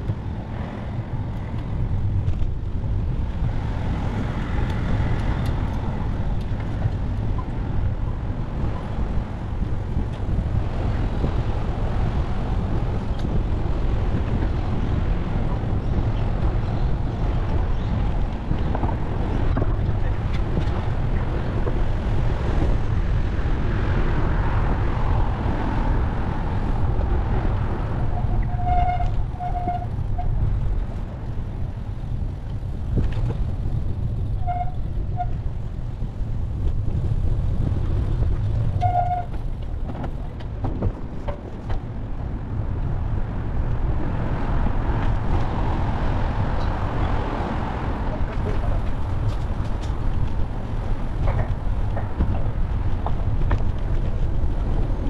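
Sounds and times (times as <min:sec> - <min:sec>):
city traffic noise: 0:00.0 - 0:55.0
wind and road rumble: 0:00.0 - 0:55.0.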